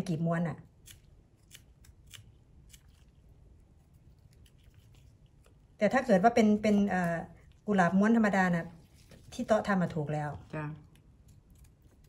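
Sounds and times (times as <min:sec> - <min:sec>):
person speaking: 0:05.8 - 0:11.0.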